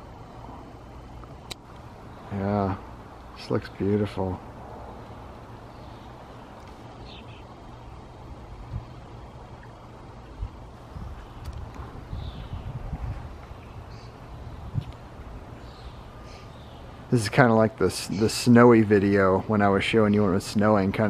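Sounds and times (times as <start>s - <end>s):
wind buffeting microphone: 0.0s - 16.2s.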